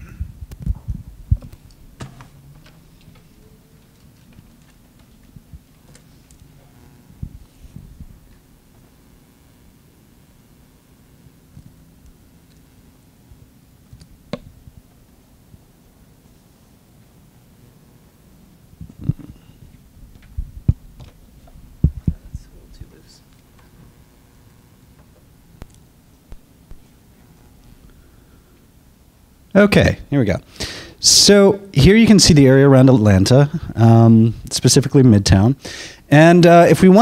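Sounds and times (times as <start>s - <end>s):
microphone handling thumps: 0.0s - 2.6s, 7.1s - 8.5s, 18.8s - 22.6s
faint steady hum: 0.0s - 37.0s.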